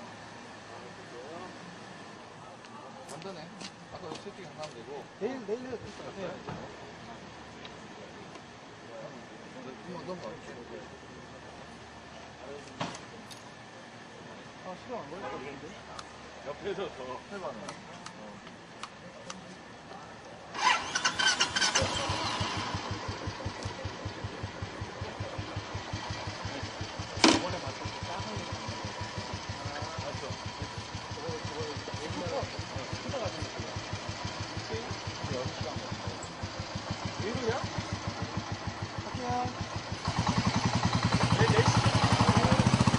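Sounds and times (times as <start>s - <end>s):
motorcycle engine idling: 18.6s - 42.9s.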